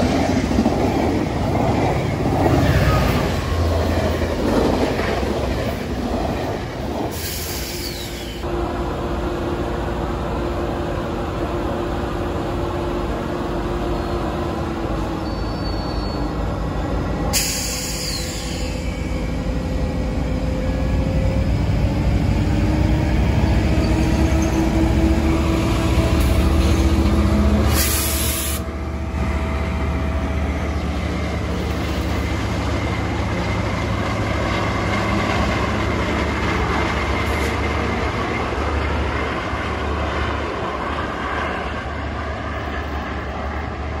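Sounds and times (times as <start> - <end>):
locomotive engine drone: 0.0 - 44.0
train wheels rumbling on rail: 0.0 - 44.0.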